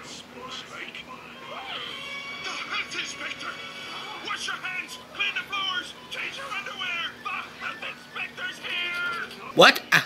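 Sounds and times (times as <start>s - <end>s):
high-pitched cartoon voices: 1.3s - 10.0s
cartoon music: 1.4s - 9.6s.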